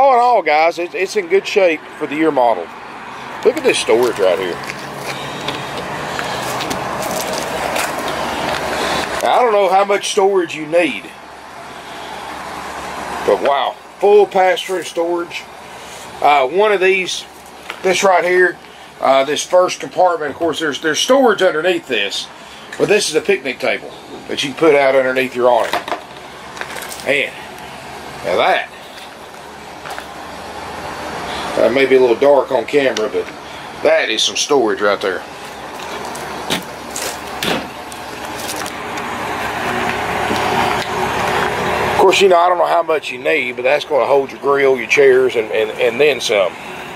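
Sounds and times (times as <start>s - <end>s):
road traffic rushing by: 0.0s - 46.9s
vehicle approaching: 0.0s - 46.9s.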